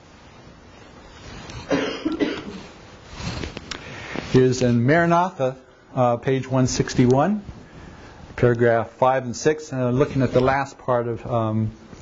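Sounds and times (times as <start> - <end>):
man coughing: 1.7 - 2.7.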